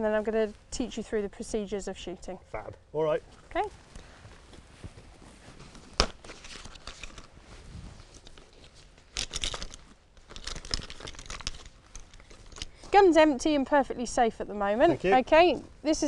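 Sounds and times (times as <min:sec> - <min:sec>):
rustling and crinkling: 0:03.2 - 0:16.0.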